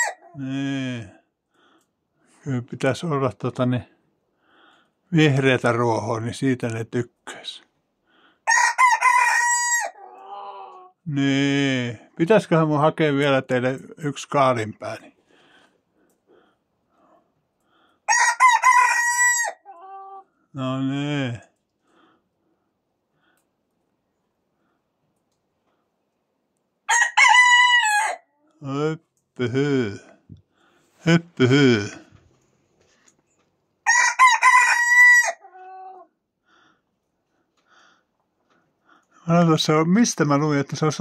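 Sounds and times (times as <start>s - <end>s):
rooster crowing: 0.0s - 0.4s, 8.4s - 10.9s, 18.1s - 20.2s, 26.9s - 28.4s, 33.8s - 36.1s.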